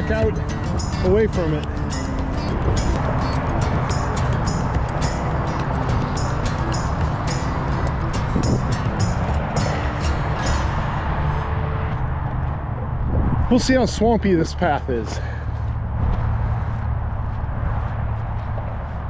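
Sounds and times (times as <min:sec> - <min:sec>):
heavy traffic rushing: 0:00.0 - 0:19.0
rapid light ticks: 0:00.1 - 0:09.6.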